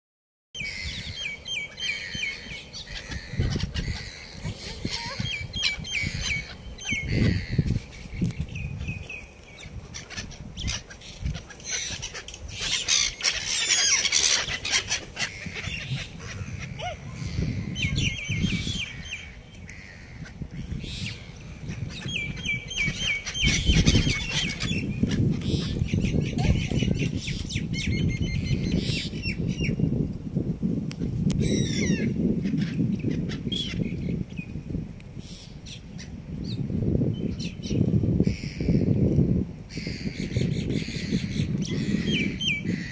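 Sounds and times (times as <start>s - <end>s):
gulls calling: 0.6s - 29.8s
wind rumble on microphone: 0.6s - 42.9s.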